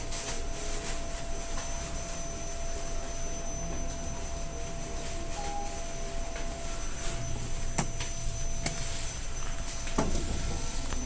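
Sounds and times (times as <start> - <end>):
elevator running hum: 0.0 - 11.0
faint thin whine: 0.1 - 11.0.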